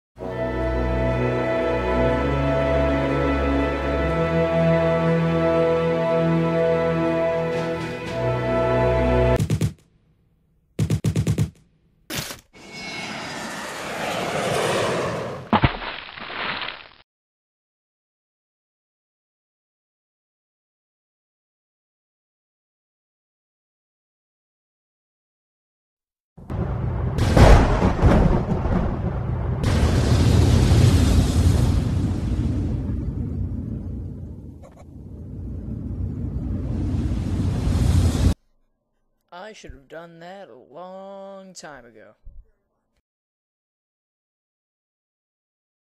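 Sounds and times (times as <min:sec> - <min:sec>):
loud crash: 0:26.5 - 0:33.4
cartoon explosion blast: 0:26.5 - 0:35.2
low rumble: 0:26.5 - 0:38.4
rush of noise: 0:29.7 - 0:38.4.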